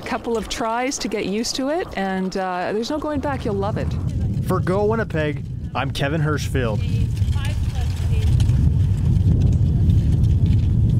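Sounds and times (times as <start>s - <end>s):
wind rumbling on microphone: 0.0s - 10.9s.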